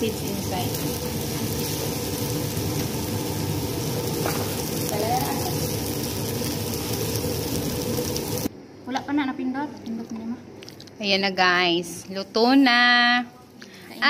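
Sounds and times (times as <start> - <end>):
food sizzling in a pan: 0.0 - 8.5.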